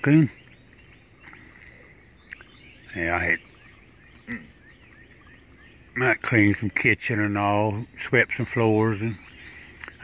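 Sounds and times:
faint chirps: 0.0 - 10.0.

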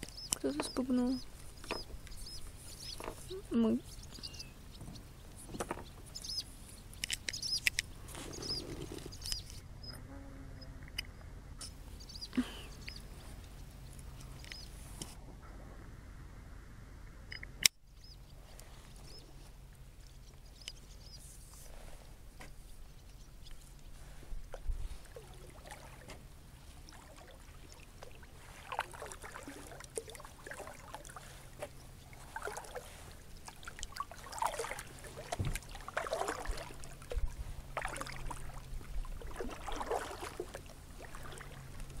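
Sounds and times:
water sloshing and gurgling: 0.0 - 10.0, 17.3 - 42.0.

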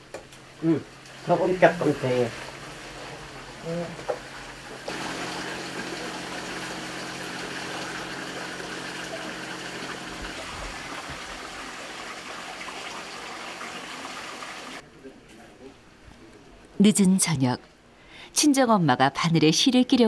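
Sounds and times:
flowing water rushing: 4.3 - 14.8.

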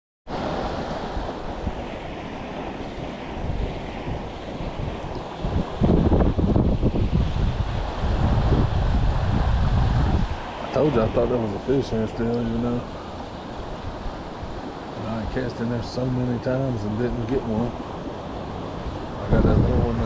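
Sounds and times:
flowing creek water: 0.3 - 20.0
wind buffeting microphone: 0.3 - 20.0.

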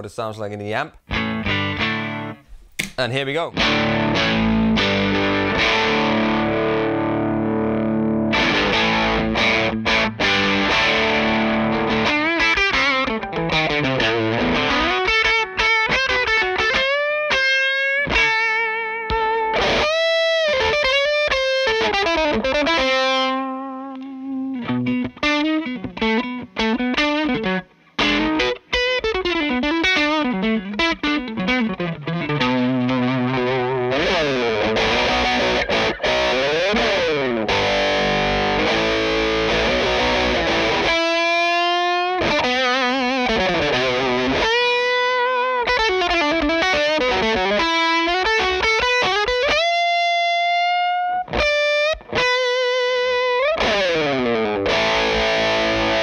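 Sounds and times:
distorted guitar chords: 1.0 - 2.5, 3.6 - 56.0
distorted electric guitar lead: 1.1 - 2.4, 3.6 - 56.0.

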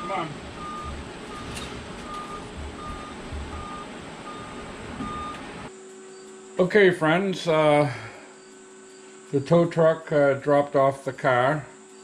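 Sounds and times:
truck engine rumbling: 0.0 - 5.7
reversing alarm beeping: 0.0 - 6.3.

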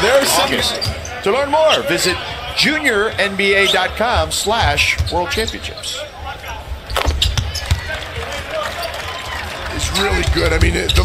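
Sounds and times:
arena background noise: 0.0 - 11.0
basketball bouncing on hardwood: 7.0 - 7.9.

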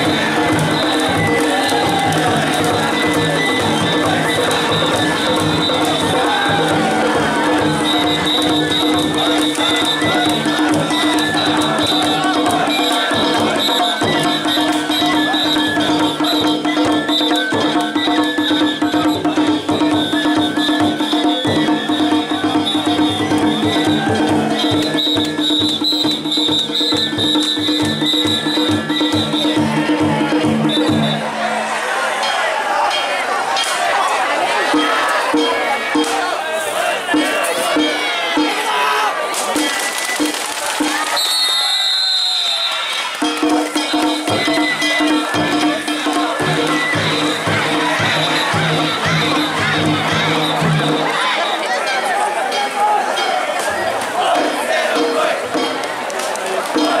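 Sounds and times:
drums in fast beat: 0.0 - 31.9, 34.6 - 51.8, 52.5 - 57.0
crowd shouting and cheering: 0.0 - 57.0
ringing gongs: 43.2 - 53.6.

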